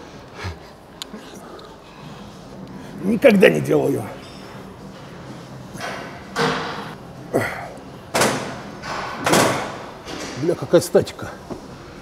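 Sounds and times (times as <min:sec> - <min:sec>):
man grunting: 0:07.3 - 0:07.8.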